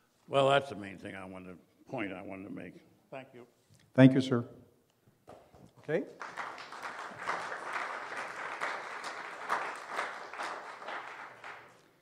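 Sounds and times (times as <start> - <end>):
audience applauding: 6.0 - 12.0.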